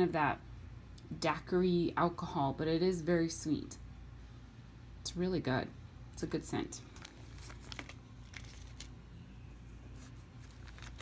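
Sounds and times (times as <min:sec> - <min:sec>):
plastic bags crinkling: 0:06.8 - 0:09.1, 0:10.0 - 0:11.0.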